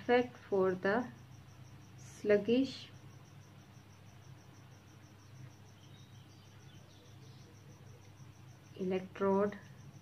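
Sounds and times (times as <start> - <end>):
woman speaking: 0.0 - 1.2, 2.0 - 3.0, 8.8 - 9.7
cricket chirping: 0.0 - 10.0.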